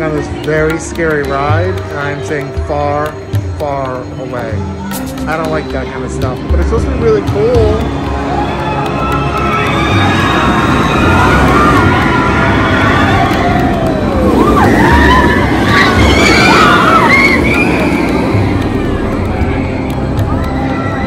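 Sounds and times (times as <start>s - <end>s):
roller coaster rumble and rush: 5.2s - 21.0s
riders screaming: 8.3s - 21.0s.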